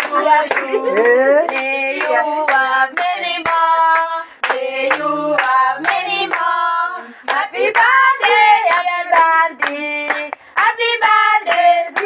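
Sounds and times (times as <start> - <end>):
group of people singing: 0.0 - 12.0
people clapping in time: 0.0 - 12.0.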